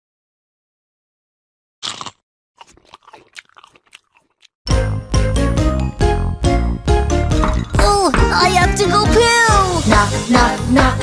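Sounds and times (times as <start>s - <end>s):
cartoon crunching and munching: 1.8s - 4.6s
children's song with steady beat: 7.8s - 11.0s.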